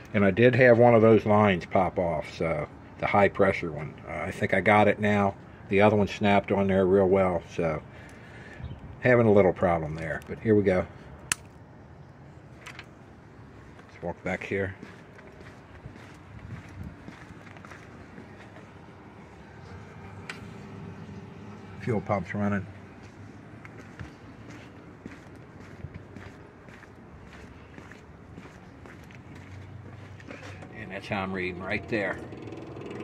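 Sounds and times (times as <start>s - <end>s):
sharp click: 11.3s - 11.5s
footsteps on pavement: 13.4s - 31.4s.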